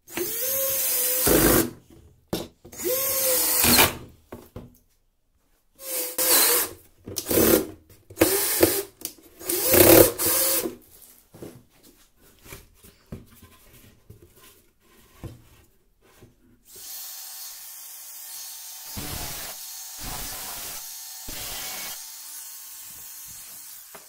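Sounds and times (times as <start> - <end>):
cordless drill driving screws: 0.1 - 1.7, 2.8 - 4.0, 5.8 - 10.7, 18.7 - 23.9.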